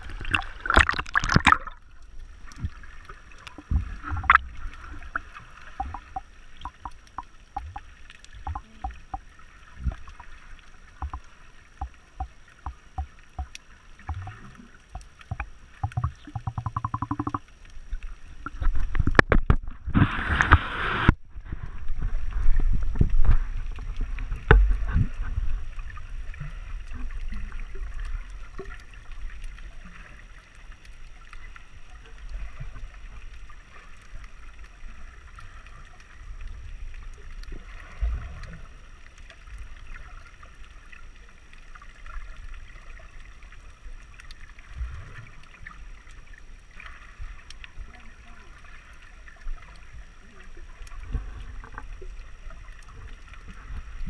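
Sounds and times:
underwater rumbling water wash: 0.0 - 41.5, 42.4 - 54.0
rush of water: 0.0 - 54.0
underwater clicks and knocks: 0.2 - 1.8, 3.4 - 5.1, 5.7 - 10.3, 10.9 - 17.5, 18.4 - 21.6, 22.7 - 25.2.

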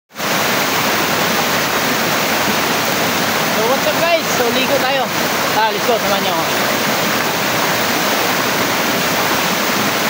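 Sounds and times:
waterfall rushing: 0.1 - 10.0.

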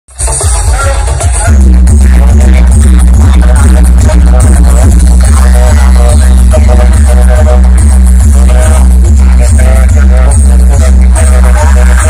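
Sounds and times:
loud electronic dance music: 0.1 - 12.0
deep bass drone: 1.5 - 12.0.

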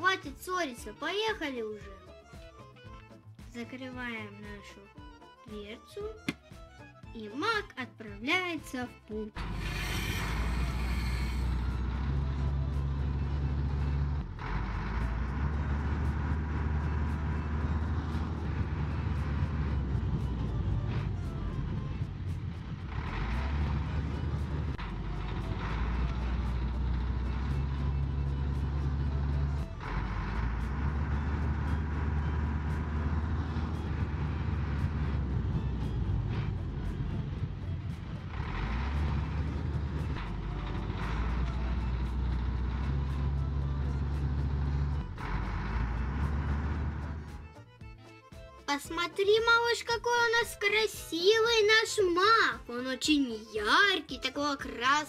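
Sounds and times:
heavy truck engine rumbling: 0.0 - 55.0.

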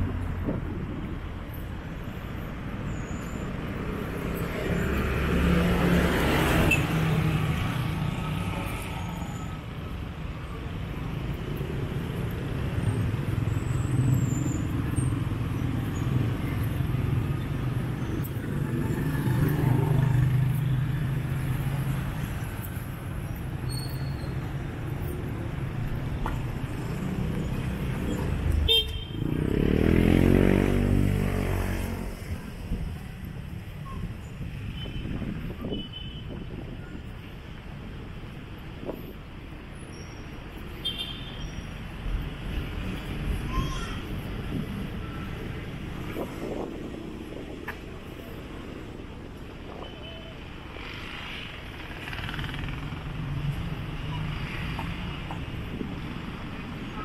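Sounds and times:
vehicles passing: 0.0 - 57.0.

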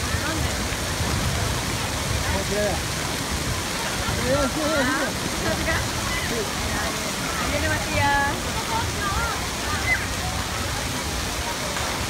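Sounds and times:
running water rushing: 0.0 - 12.0
people shouting and talking: 3.5 - 12.0.

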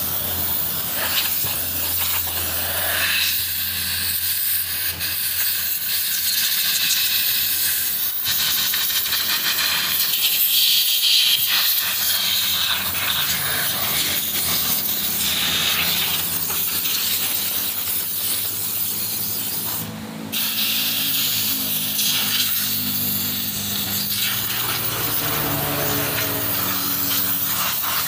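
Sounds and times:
compressed air blow gun hissing: 0.0 - 28.0.

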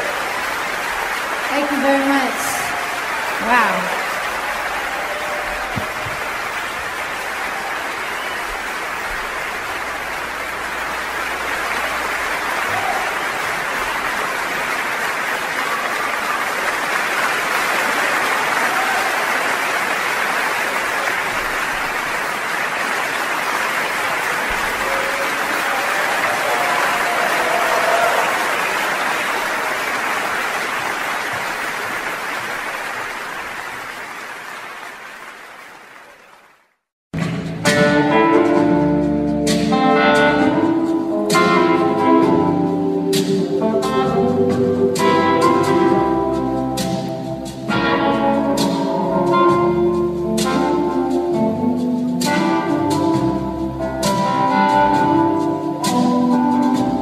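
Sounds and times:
audience applauding: 0.0 - 37.8, 46.8 - 51.2.

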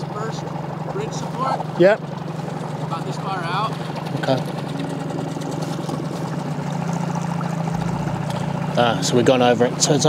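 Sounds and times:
small outboard motor running: 0.0 - 10.0.

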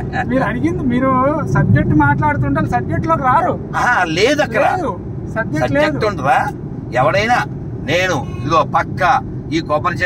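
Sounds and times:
car cabin road rumble: 0.0 - 10.0
man speaking: 0.0 - 10.0.

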